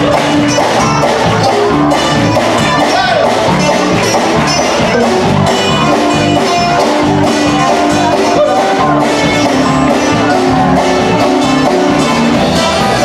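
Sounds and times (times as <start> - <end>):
live band playing: 0.0 - 13.0
repeating bass line: 0.0 - 13.0.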